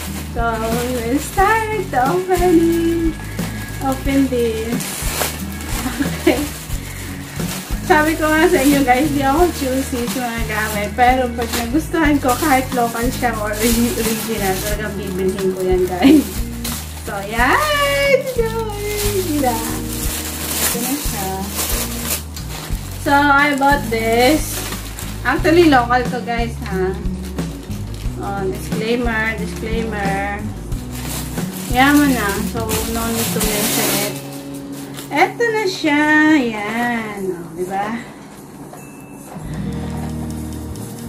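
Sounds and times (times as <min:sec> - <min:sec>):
background music: 0:00.0 - 0:41.0
plastic packaging rustling: 0:00.0 - 0:41.0.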